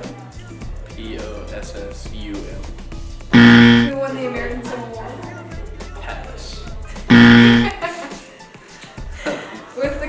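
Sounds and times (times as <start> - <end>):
background music: 0.0 - 10.0
short loud buzzer: 3.4 - 3.9, 7.1 - 7.7.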